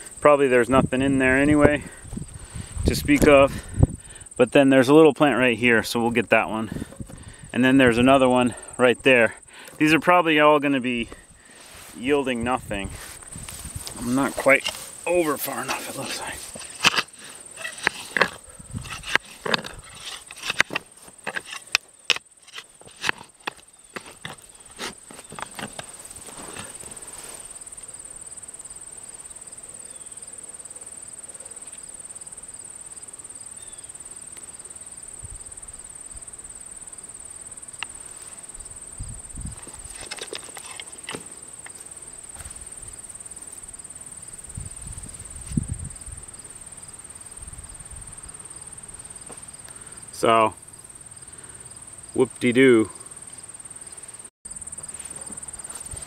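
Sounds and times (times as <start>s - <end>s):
high insect drone: 0.0s - 56.0s
soft soil handling: 9.5s - 28.0s, 39.4s - 45.7s, 52.1s - 56.0s
digging tool crunching soil: 11.4s - 27.5s, 39.6s - 42.6s.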